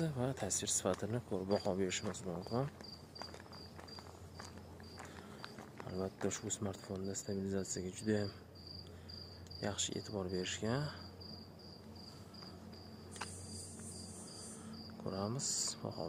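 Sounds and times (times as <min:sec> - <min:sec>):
person's voice: 0:00.0 - 0:02.8, 0:15.0 - 0:16.0
cricket chirping: 0:00.0 - 0:16.0.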